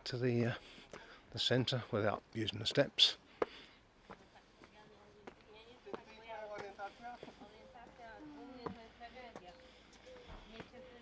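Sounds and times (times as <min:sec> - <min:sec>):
footsteps on stone steps: 0:00.5 - 0:01.2, 0:02.6 - 0:11.0
faint voices talking: 0:04.0 - 0:11.0.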